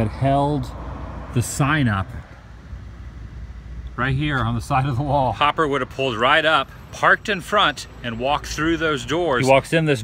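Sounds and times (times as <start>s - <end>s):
low steady rumble: 0.0s - 9.3s.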